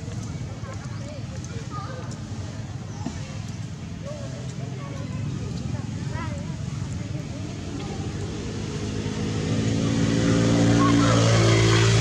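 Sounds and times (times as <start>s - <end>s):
vehicle engine humming: 5.4s - 12.0s.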